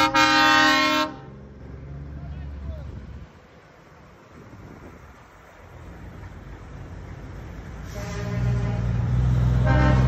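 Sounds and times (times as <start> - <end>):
truck diesel engine rumbling: 0.0 - 10.0.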